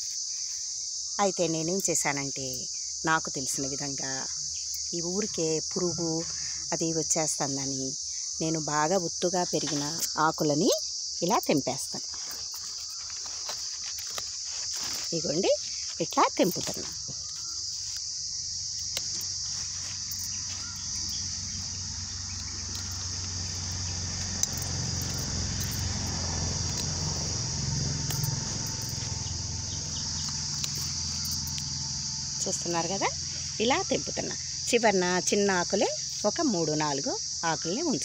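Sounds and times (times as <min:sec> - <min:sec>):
high-pitched insect chorus: 0:00.0 - 0:38.0.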